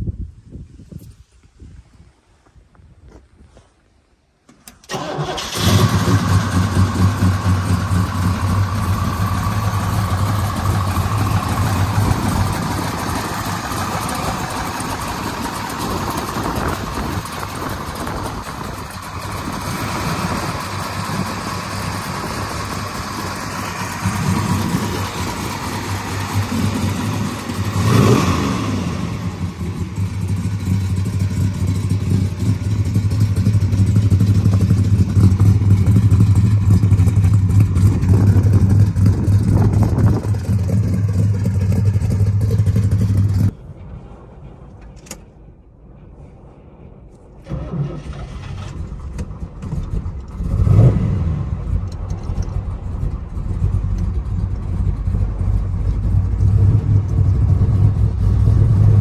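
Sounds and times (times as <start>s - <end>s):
car engine starting and idling: 4.5s - 59.0s.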